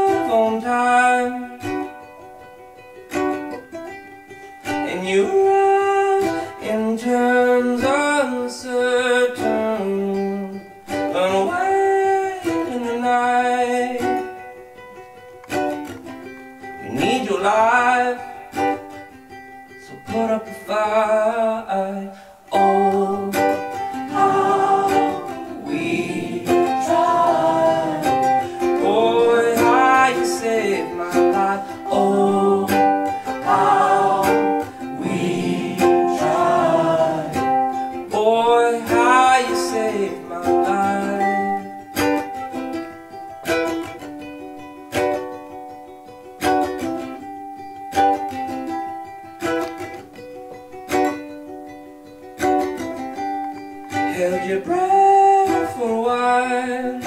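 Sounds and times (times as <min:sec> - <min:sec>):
person singing without words: 0:00.0 - 0:02.2, 0:04.7 - 0:14.3, 0:16.8 - 0:19.0, 0:19.7 - 0:42.5, 0:53.8 - 0:57.0
strummed ukulele: 0:00.0 - 0:57.0.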